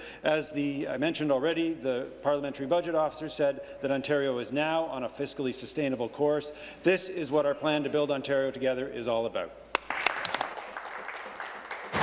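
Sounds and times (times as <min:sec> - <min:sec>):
people applauding: 0:09.7 - 0:12.0.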